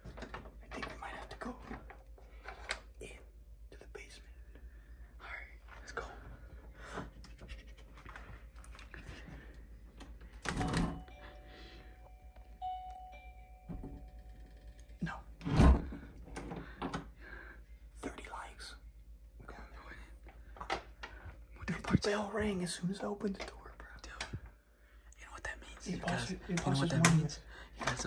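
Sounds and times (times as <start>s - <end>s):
door bell ringing: 10.5s - 15.0s.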